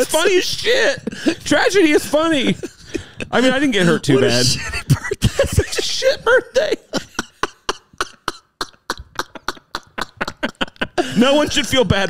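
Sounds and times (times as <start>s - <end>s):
man laughing breathily: 1.0s - 11.6s.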